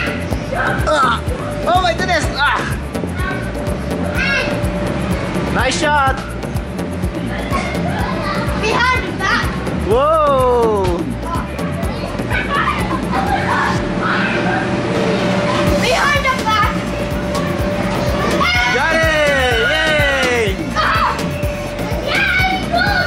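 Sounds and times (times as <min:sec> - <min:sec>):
background music with steady beat: 0:00.0 - 0:14.0, 0:14.9 - 0:23.0
children shrieking and calling out: 0:20.7 - 0:21.3, 0:21.9 - 0:23.0.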